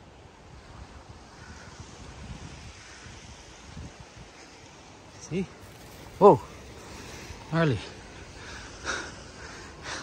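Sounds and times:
surf on a beach: 0.0s - 10.0s
wind buffeting the microphone: 0.0s - 10.0s.

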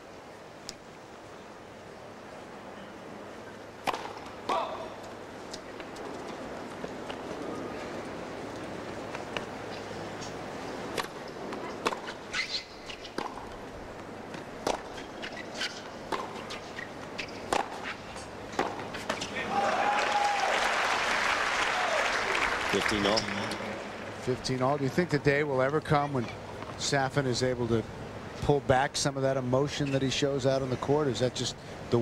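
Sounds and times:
tennis racket strikes: 3.8s - 4.8s, 14.4s - 19.3s
tennis ball bouncing: 3.8s - 7.7s, 8.5s - 19.4s
crowd applause: 19.4s - 23.8s.

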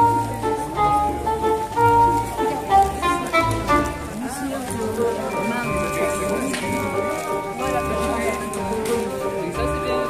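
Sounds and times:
market crowd voices: 0.0s - 10.0s
music with held notes and bass: 0.0s - 10.0s.

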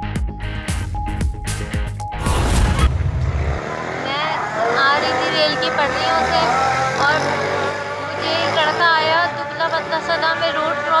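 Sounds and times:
street traffic: 1.6s - 11.0s
low rumble: 2.1s - 3.7s
woman speaking: 4.0s - 7.4s, 8.1s - 11.0s.

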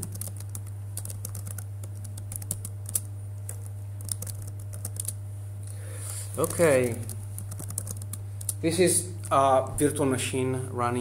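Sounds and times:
computer keyboard typing: 0.0s - 5.2s, 6.4s - 8.6s
steady low hum: 0.0s - 11.0s.

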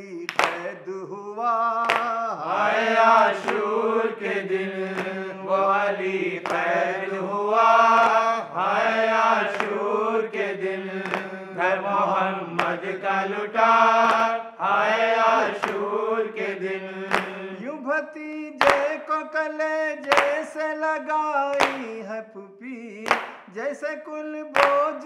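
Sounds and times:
men chanting in unison: 1.8s - 20.8s.

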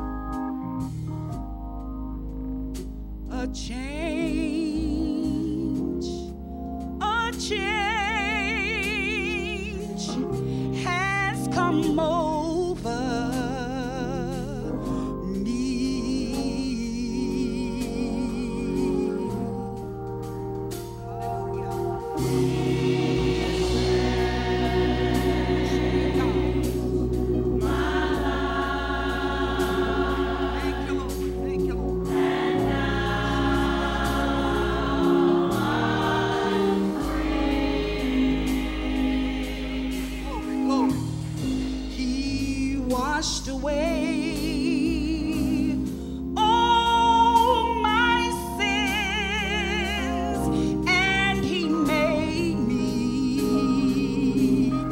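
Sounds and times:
sustained accompaniment chords: 0.0s - 13.1s, 14.6s - 46.4s
woman singing gospel with vibrato: 3.3s - 6.3s, 7.0s - 19.9s, 22.5s - 54.9s
steady beat: 20.7s - 42.6s.

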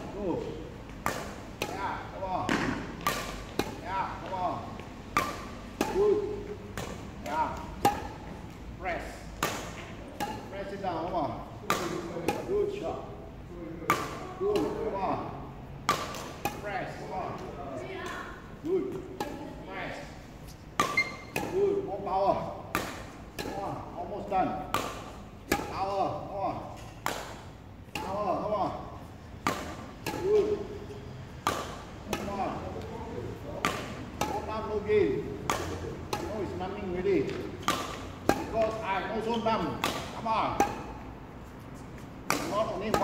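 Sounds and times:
racket swing cracks: 0.9s - 8.6s, 9.3s - 10.8s, 11.6s - 12.6s, 15.8s - 17.4s, 22.6s - 23.9s, 24.6s - 26.0s, 26.7s - 28.3s, 29.3s - 30.7s, 31.3s - 32.9s, 33.6s - 39.1s, 39.7s - 43.0s.

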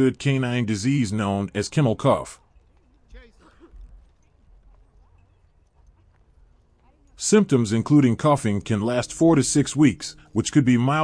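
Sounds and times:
faint indistinct sounds: 0.0s - 11.0s.

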